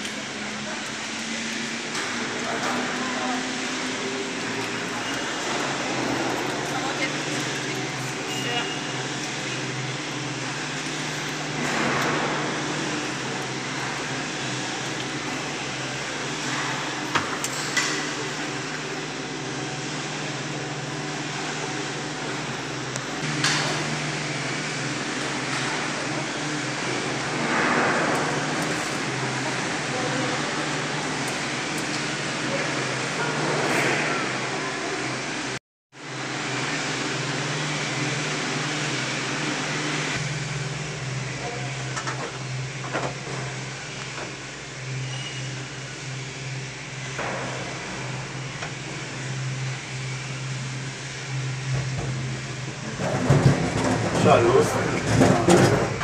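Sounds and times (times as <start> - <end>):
cabins moving through station: 0.0 - 56.0
gondola lift mechanical hum: 0.0 - 56.0
people's voices: 2.2 - 9.7, 54.1 - 56.0.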